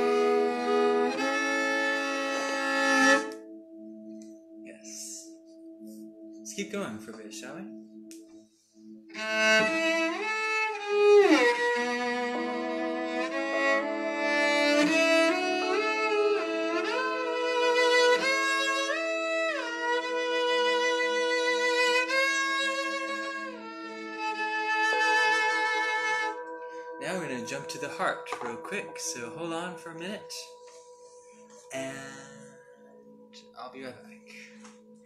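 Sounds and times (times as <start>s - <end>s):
bowed cello melody: 0.0s - 35.0s
low sustained note: 0.0s - 35.0s.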